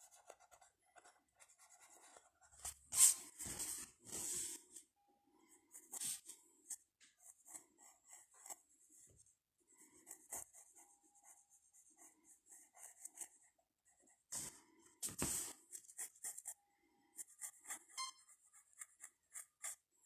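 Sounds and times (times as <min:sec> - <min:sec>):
pencil scratching on paper: 0:00.0 - 0:04.7, 0:05.6 - 0:20.0.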